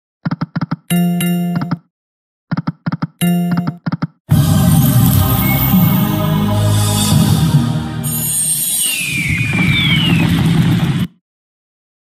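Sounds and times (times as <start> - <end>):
falling whistle tones: 5.0 - 6.3, 8.0 - 10.4.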